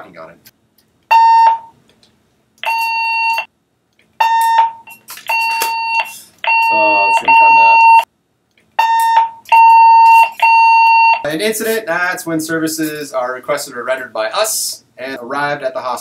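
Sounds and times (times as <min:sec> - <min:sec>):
portable radio beeps: 0:05.3 - 0:08.0.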